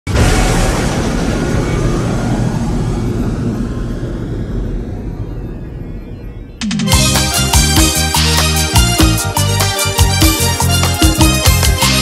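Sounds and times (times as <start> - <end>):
deep wide rumbling: 0.1 - 6.6.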